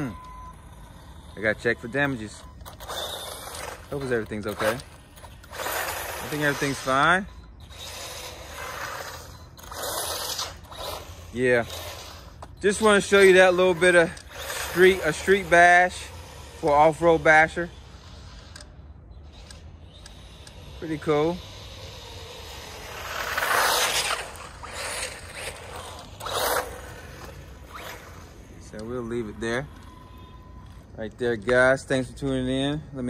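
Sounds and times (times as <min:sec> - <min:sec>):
rc truck driving on asphalt: 0:00.0 - 0:33.0.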